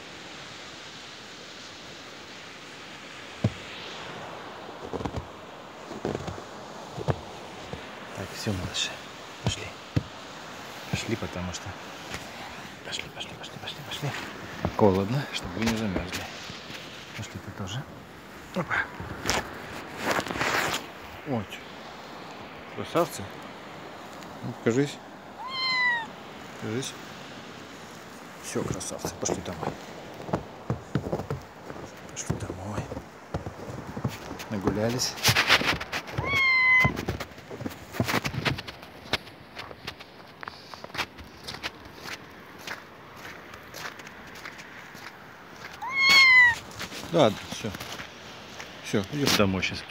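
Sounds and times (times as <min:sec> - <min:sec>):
crunching rustling in snow: 0:00.0 - 0:49.9
kitten meowing: 0:25.4 - 0:26.1, 0:36.2 - 0:37.0, 0:45.8 - 0:46.6.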